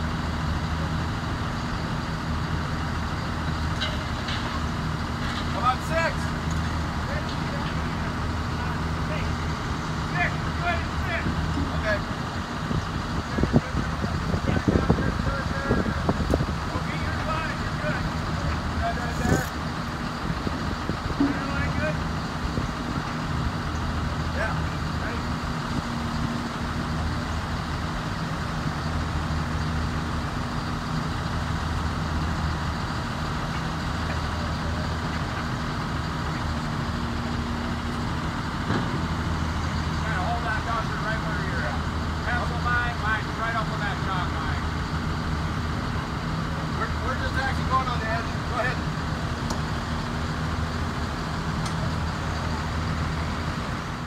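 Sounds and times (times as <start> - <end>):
crane diesel engine droning: 0.0 - 54.0.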